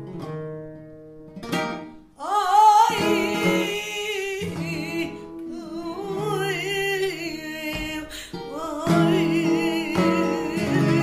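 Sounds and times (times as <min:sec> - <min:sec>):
acoustic flamenco guitar: 0:00.0 - 0:11.0
woman singing flamenco: 0:01.7 - 0:11.0.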